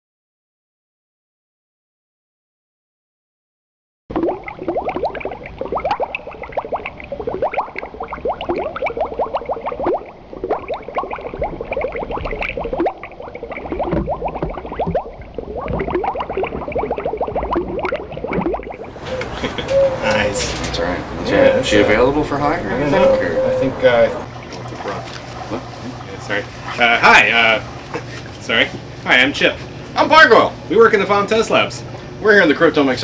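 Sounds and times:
bubbling liquid: 4.1s - 19.3s, 21.0s - 29.9s.

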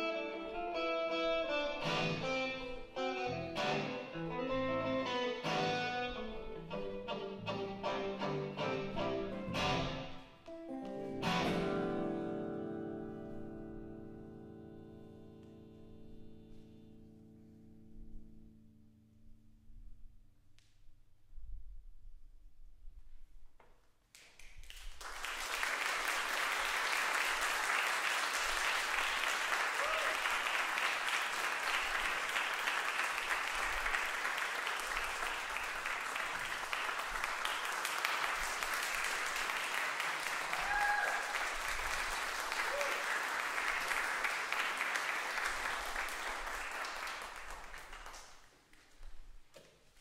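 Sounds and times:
audience applauding: 24.2s - 48.6s
short calls from audience: 29.6s - 30.6s, 40.4s - 41.6s.

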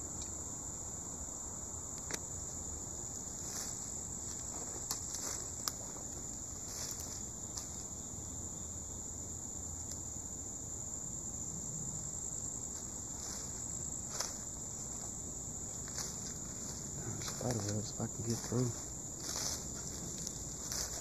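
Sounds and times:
insects droning: 0.0s - 21.0s.

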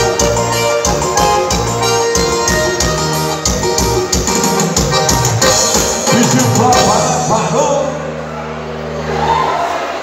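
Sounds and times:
held low keyboard chord: 0.0s - 9.1s
murmur of crowd voices: 0.0s - 10.0s.

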